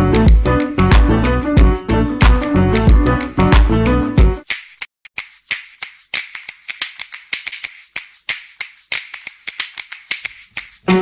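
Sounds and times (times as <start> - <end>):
keyboard melody: 0.0 - 4.4
snap-like percussion clicks: 4.4 - 10.9.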